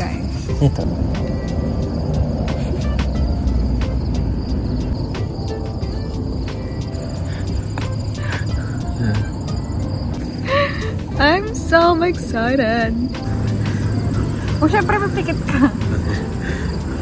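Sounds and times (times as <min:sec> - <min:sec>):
insects chirring: 0:00.0 - 0:17.0
low rumble: 0:00.0 - 0:17.0.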